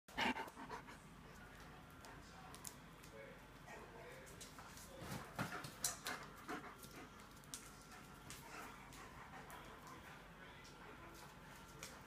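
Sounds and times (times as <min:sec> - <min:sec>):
dogs panting: 0:00.1 - 0:01.0, 0:05.3 - 0:11.5.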